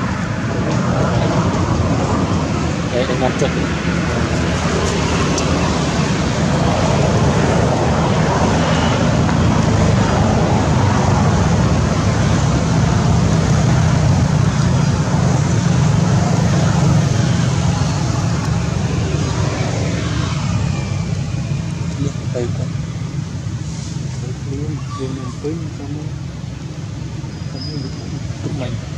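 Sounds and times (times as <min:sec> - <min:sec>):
loud rushing noise with rumble: 0:00.0 - 0:28.9.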